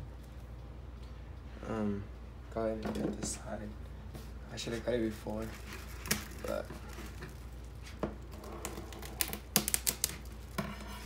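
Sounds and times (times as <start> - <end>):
plastic wrap crinkling: 5.2 - 11.0.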